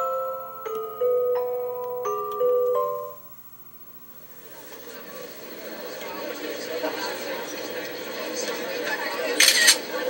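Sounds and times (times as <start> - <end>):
murmur of crowd: 4.4 - 10.0.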